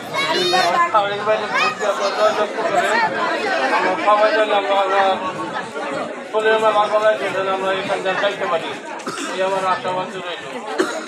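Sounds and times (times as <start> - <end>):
man speaking through megaphone: 0.0 - 3.1, 3.8 - 5.6, 6.2 - 10.8
people chattering: 0.0 - 11.0.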